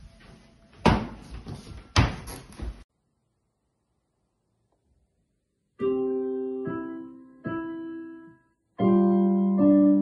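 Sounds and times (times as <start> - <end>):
loud thumps in a room: 0.8 - 2.8.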